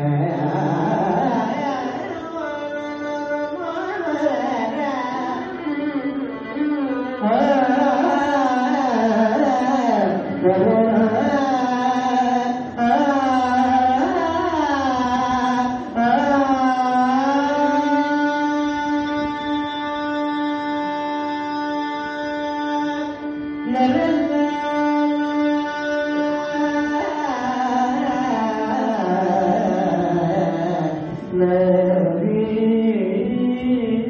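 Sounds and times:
violin accompaniment: 0.0 - 34.0.

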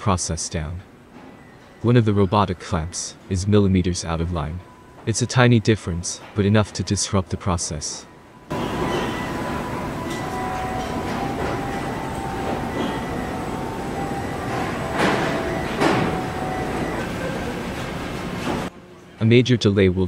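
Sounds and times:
industrial machinery hum: 8.0 - 19.0.

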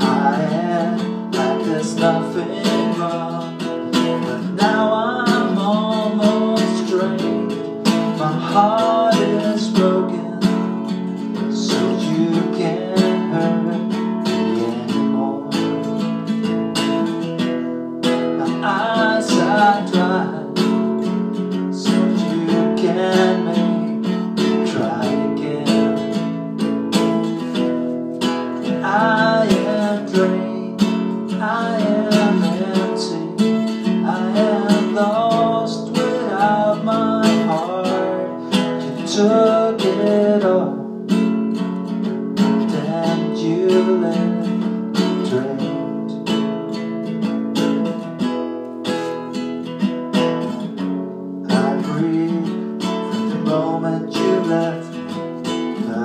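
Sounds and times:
man singing: 0.0 - 46.8, 51.4 - 56.0
acoustic guitar strumming: 0.0 - 56.0.

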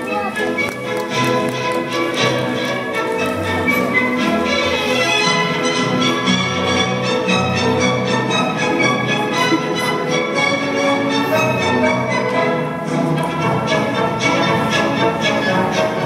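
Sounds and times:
orchestral dance music: 0.0 - 16.0.

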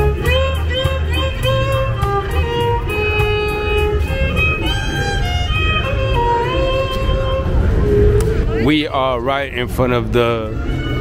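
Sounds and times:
violin long held notes: 0.0 - 11.0
steady low rumble: 1.4 - 11.0.

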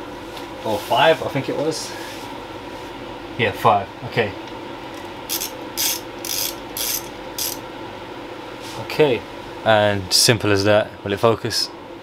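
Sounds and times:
hand ratchet clicking: 5.3 - 7.6.

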